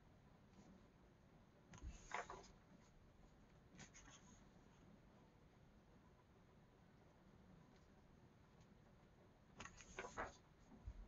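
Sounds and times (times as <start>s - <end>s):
book page rustling: 9.6s - 10.4s.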